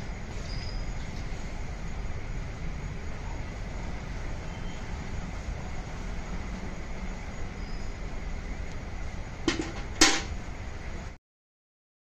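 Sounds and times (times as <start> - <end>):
metal clanks: 9.5 - 10.4.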